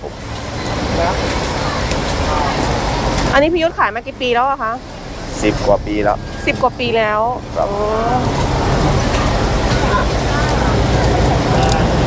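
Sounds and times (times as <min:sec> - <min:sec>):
low rumble of motor traffic: 0:00.0 - 0:12.0
person speaking: 0:00.8 - 0:12.0.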